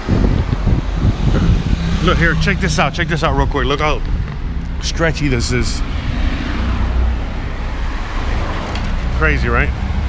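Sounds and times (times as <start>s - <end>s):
car driving along road: 0.0s - 10.0s.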